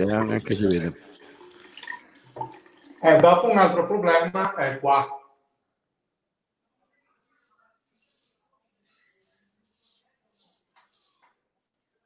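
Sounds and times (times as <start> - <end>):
faint running tap water: 0.0 - 3.8.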